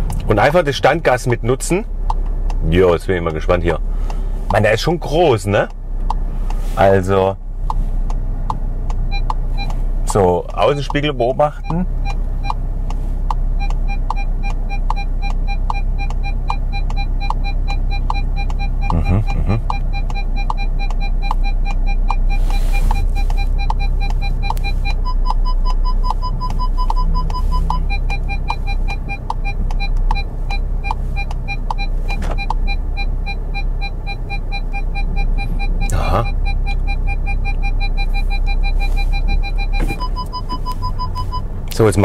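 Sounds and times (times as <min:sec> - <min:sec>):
low bass of background music: 0:00.0 - 0:42.0
parking sensor beeps: 0:00.3 - 0:42.0.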